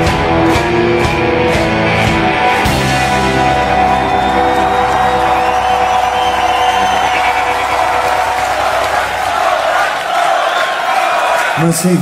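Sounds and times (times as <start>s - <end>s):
rock band final chord ringing: 0.0s - 9.8s
audience cheering: 2.1s - 12.0s.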